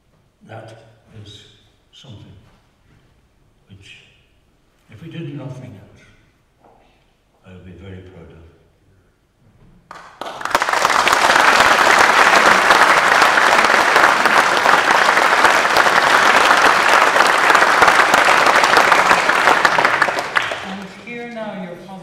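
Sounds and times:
audience applauding: 9.9s - 21.1s.

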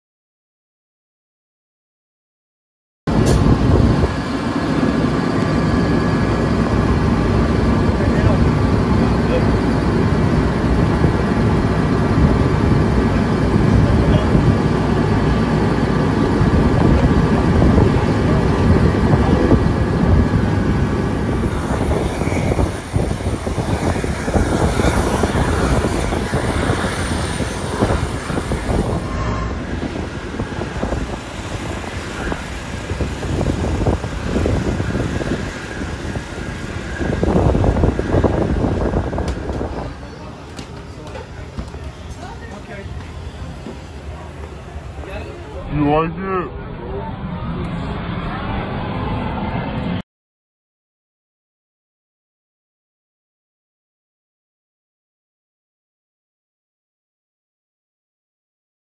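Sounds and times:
loud engine drone: 3.1s - 50.0s
open-air rumble: 3.1s - 50.0s
faint voices: 5.6s - 50.0s.

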